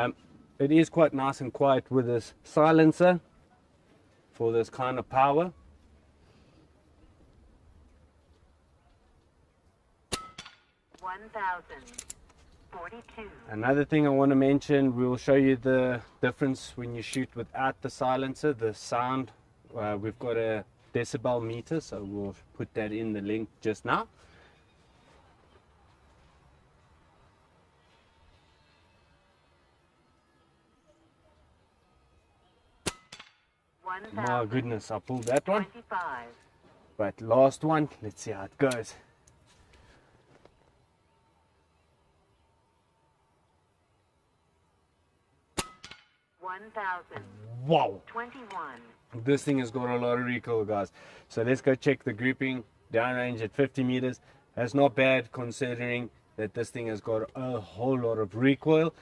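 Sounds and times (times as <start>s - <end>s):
silenced air rifle shot: 10.1s - 10.8s, 32.8s - 33.5s, 45.6s - 46.3s
air rifle shot crack: 45.6s - 46.2s.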